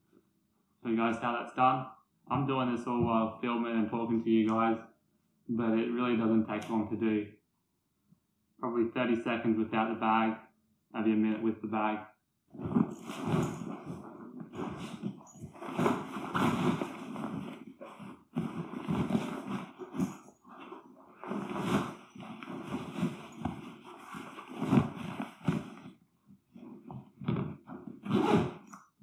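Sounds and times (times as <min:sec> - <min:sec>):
fabric rustling and scraping: 0:12.5 - 0:28.8.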